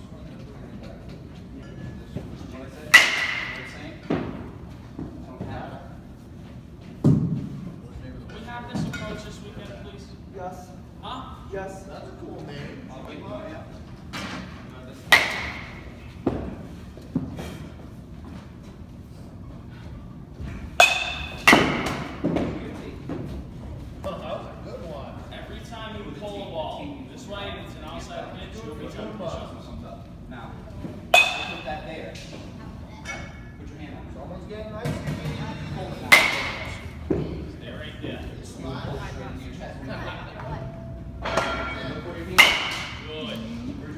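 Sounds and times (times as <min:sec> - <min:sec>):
bat cracking against ball: 0:02.9 - 0:03.7, 0:20.8 - 0:22.4, 0:42.4 - 0:43.0
baseball bat cracking ball: 0:02.9 - 0:04.4, 0:15.1 - 0:16.5, 0:20.8 - 0:22.6, 0:31.1 - 0:31.9, 0:36.1 - 0:37.3, 0:42.4 - 0:43.1.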